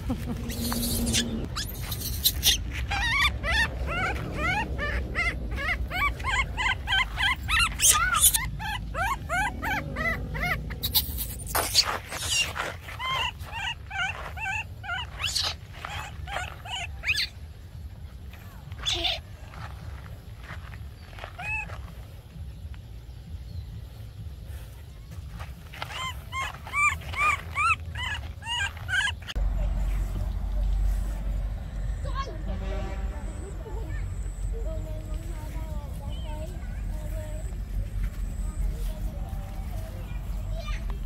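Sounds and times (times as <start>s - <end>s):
baby monkey squealing: 0.0s - 17.4s, 18.8s - 19.3s, 21.0s - 21.8s, 25.7s - 29.4s.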